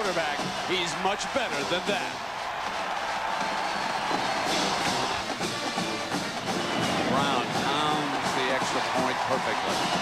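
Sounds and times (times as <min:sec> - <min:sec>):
crowd cheering: 0:00.0 - 0:10.0
stadium band music: 0:00.0 - 0:10.0.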